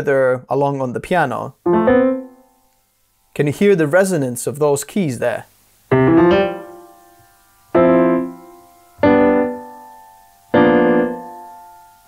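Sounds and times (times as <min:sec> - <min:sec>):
piano chords ringing: 0:01.7 - 0:02.5, 0:05.9 - 0:12.0.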